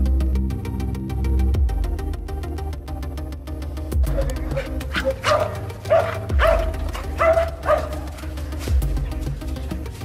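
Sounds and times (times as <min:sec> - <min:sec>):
background music: 0:00.0 - 0:10.0
dog barking: 0:04.0 - 0:08.7.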